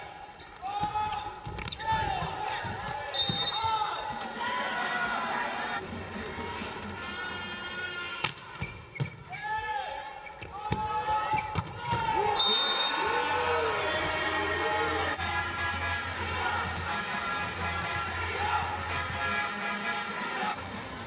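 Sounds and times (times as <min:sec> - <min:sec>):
crowd voices and cheering: 0:00.0 - 0:21.0.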